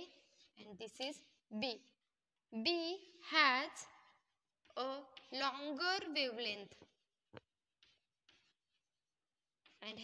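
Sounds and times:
chalk strokes on chalkboard: 7.8 - 10.0.

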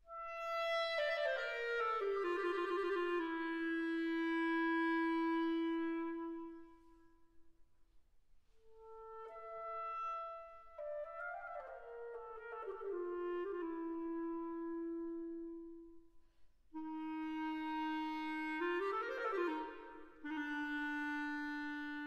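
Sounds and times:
solo clarinet playing: 0.1 - 7.2, 8.6 - 16.1, 16.7 - 22.0.

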